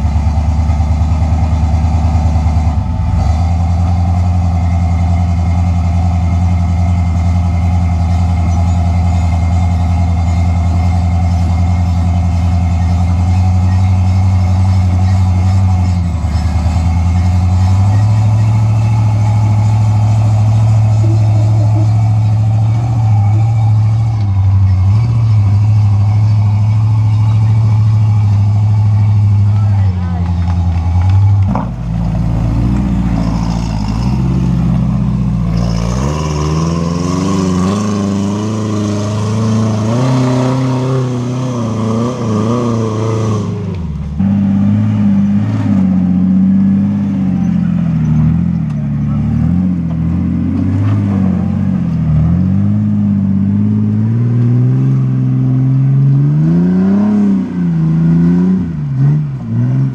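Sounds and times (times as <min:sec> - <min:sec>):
off-road vehicle engine at low revs: 0:00.0 - 0:59.9.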